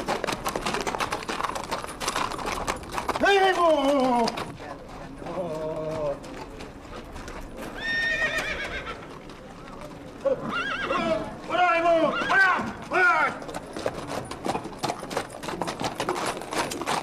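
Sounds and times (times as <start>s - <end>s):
horse hooves clopping: 0.0s - 17.0s
horse whinnies: 7.7s - 9.1s, 10.2s - 13.4s
man shouting: 11.5s - 13.4s.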